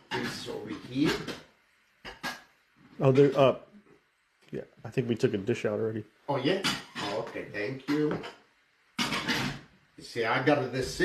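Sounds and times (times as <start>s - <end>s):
man speaking: 0.1s - 1.4s, 3.0s - 3.6s, 4.5s - 8.3s, 10.0s - 11.0s.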